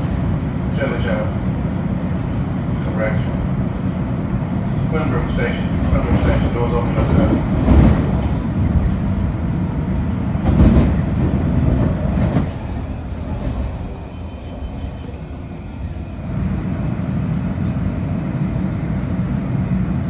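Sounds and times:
train rumbling on rails: 0:00.0 - 0:20.0
railcar jolts: 0:04.6 - 0:16.9.

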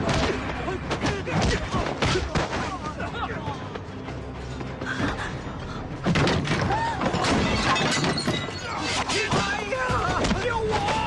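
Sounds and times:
things crashing and shattering: 0:06.2 - 0:11.0
people shouting: 0:08.7 - 0:11.0.

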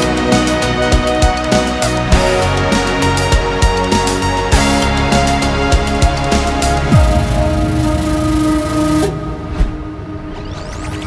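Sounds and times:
electronic music synth chord: 0:06.5 - 0:11.0.

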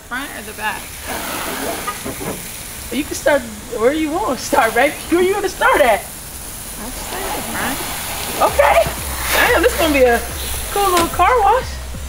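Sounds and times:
hose spraying water on metal: 0:00.0 - 0:12.0.

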